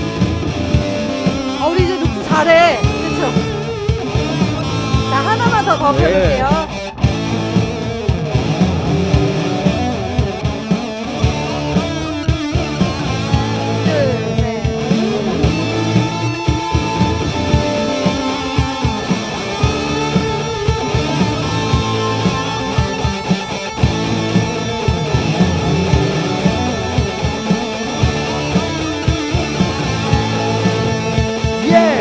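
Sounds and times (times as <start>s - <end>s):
electric guitar lead with bent notes: 0.0s - 32.0s
looped guitar: 0.0s - 32.0s
drum machine beat: 1.5s - 7.5s, 12.3s - 32.0s.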